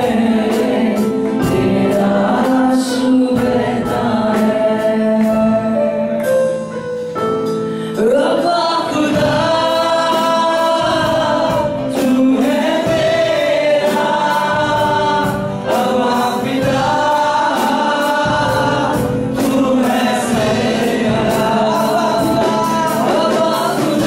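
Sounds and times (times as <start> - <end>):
group of voices singing: 0.0 - 6.2, 8.0 - 24.0.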